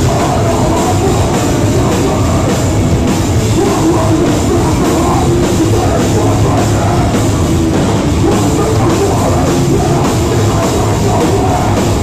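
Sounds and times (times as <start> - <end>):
driving drum kit: 0.0 - 12.0
heavy electric guitars: 0.0 - 12.0
metal band playing live: 0.0 - 12.0.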